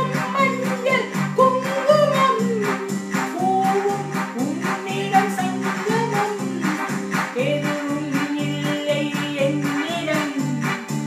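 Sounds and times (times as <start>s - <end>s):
electronic keyboard chords: 0.0s - 11.0s
steady percussion beat: 0.0s - 11.0s
woman singing: 0.0s - 11.0s.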